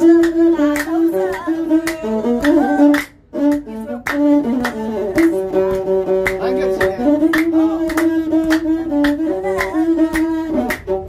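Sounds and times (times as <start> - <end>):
person singing: 0.0 - 3.0, 7.0 - 10.7
bowed fiddle playing: 0.0 - 11.0.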